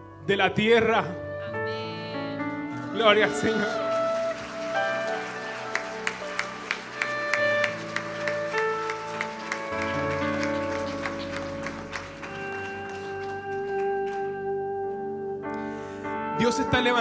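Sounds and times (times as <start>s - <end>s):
soft worship music chords: 0.0s - 17.0s
hand claps: 2.8s - 14.5s.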